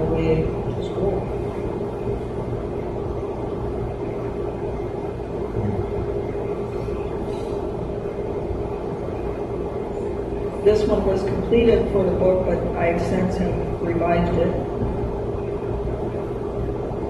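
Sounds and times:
constant hum: 0:00.0 - 0:17.0
low rumble: 0:04.0 - 0:17.0.

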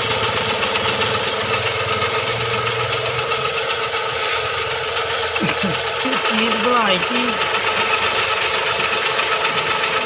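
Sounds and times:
boring machine running: 0:00.0 - 0:10.0.

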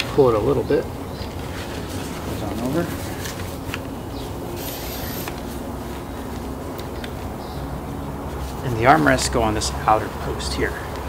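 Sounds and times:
low outdoor background hum: 0:00.0 - 0:11.0.

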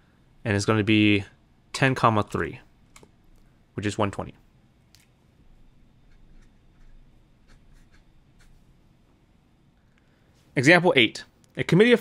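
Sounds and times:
pen nib scratching on paper: 0:06.0 - 0:08.6.

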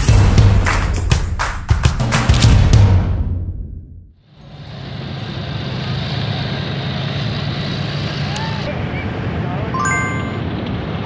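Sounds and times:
outdoor ambient noise: 0:02.9 - 0:11.0
short electronic chime: 0:09.8 - 0:10.6.

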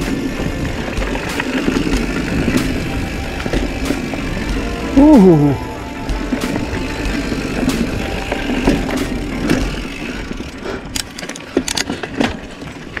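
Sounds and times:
bike tyres on dirt trail: 0:00.0 - 0:13.0
chain and frame rattle: 0:07.4 - 0:13.0.

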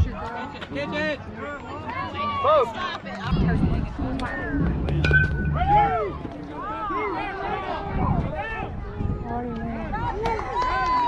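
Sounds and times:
spectators shouting and cheering: 0:00.9 - 0:11.0
metal bat hitting ball: 0:04.9 - 0:06.0.

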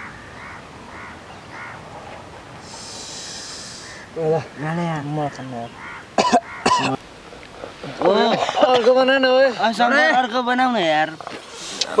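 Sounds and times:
man coughing harshly: 0:06.2 - 0:07.0.

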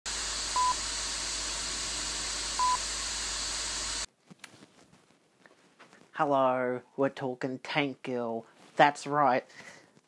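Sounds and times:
static hiss: 0:00.1 - 0:04.1.

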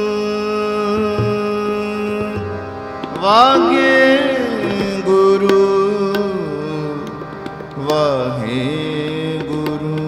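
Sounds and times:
harmonium drone: 0:00.0 - 0:10.0
man singing: 0:00.0 - 0:10.0
tabla strokes: 0:00.8 - 0:10.0.

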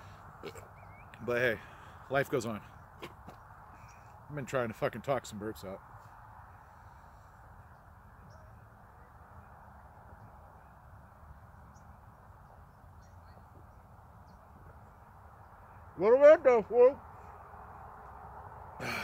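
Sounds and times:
short bird calls: 0:00.0 - 0:02.0, 0:02.7 - 0:04.2
outdoor background noise: 0:00.0 - 0:19.0.

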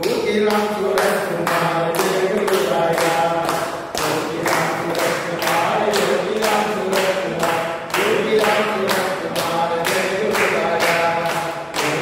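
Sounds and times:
group singing a devotional chant: 0:00.0 - 0:12.0
rhythmic hand clapping: 0:00.0 - 0:12.0.

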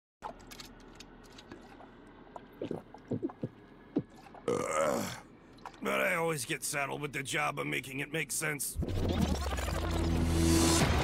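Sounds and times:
man burping: 0:04.4 - 0:05.3.

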